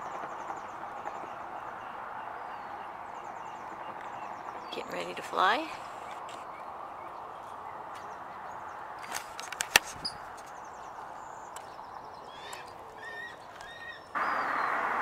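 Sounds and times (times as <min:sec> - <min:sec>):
outdoor background hiss: 0:00.0 - 0:15.0
faint bird chirps: 0:10.0 - 0:14.8.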